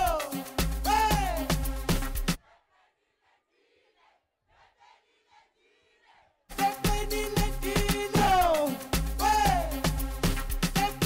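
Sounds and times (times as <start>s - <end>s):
dance music: 0.0s - 2.4s, 6.5s - 11.0s.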